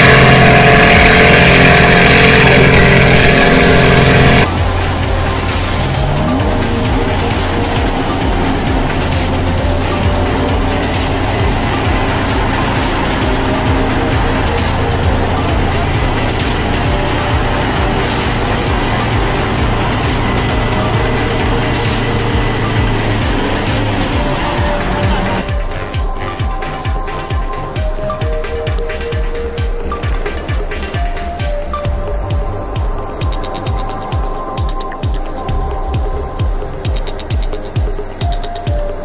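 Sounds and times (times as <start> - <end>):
music: 0.0 - 39.0
vehicle engines rumbling under load: 0.0 - 39.0
voices: 0.0 - 39.0.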